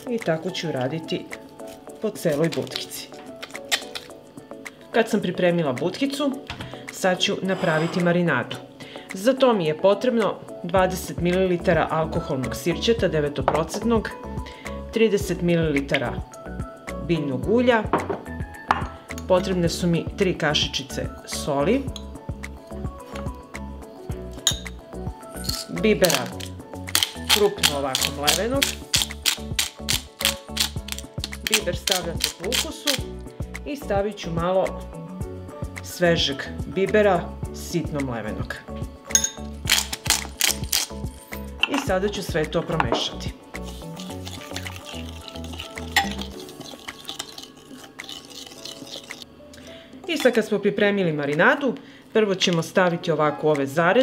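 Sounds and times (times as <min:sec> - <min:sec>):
background music: 0:00.0 - 0:54.0
metal spoon clinking on glass bowl: 0:24.4 - 0:24.7, 0:39.1 - 0:39.9, 0:43.9 - 0:49.2
metal spoon clinking glass bowl: 0:24.4 - 0:24.8, 0:25.4 - 0:32.7, 0:39.1 - 0:41.9, 0:43.6 - 0:49.3.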